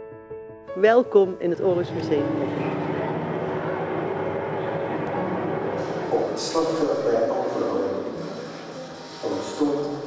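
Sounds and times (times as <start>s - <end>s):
propeller aircraft engines droning: 1.7s - 6.9s.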